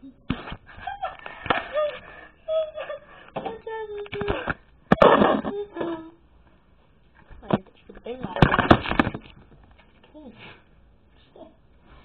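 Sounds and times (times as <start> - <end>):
girl laughing: 0.0 - 6.2.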